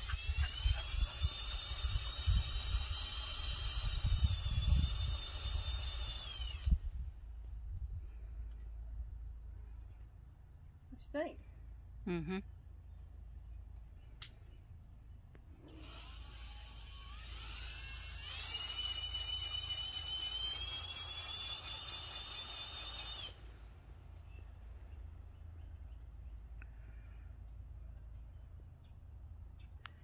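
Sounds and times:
motor whining: 0.0 - 7.0, 15.6 - 23.7.

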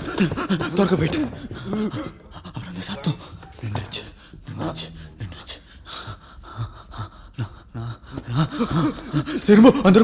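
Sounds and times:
man panting and gasping: 0.0 - 3.4, 5.7 - 10.0.

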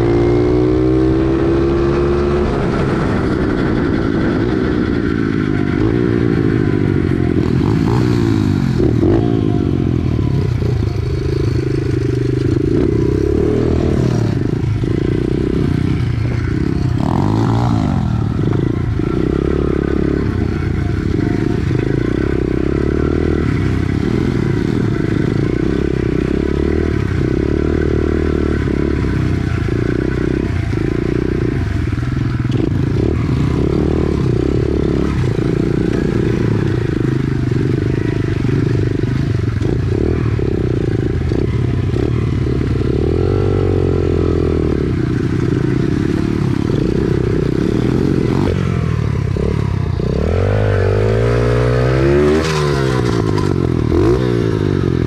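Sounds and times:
motorcycle engine revving: 0.0 - 55.0
motorcycle engine running: 0.0 - 55.0.

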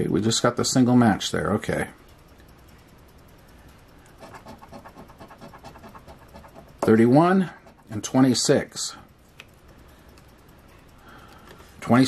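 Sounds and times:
coin scratching a scratch ticket: 4.2 - 8.3.

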